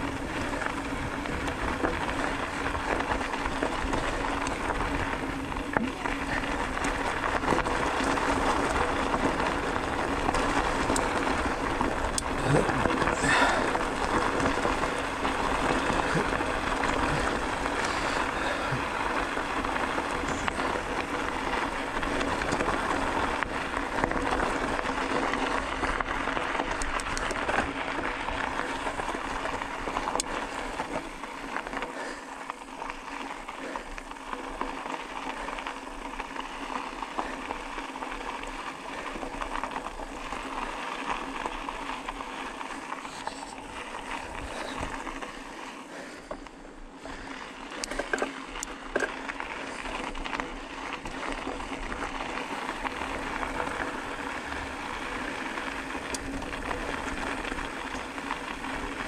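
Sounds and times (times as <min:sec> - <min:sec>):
bicycle tyres rolling on gravel: 0:00.0 - 0:59.0.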